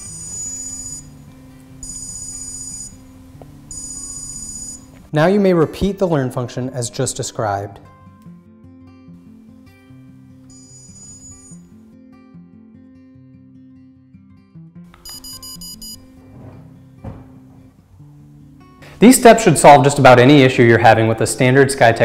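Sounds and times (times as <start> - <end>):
electronic beeps: 0.0 - 1.2, 1.8 - 3.1, 3.7 - 5.0, 10.5 - 11.6, 15.0 - 16.1
soft acoustic guitar music: 0.0 - 22.0.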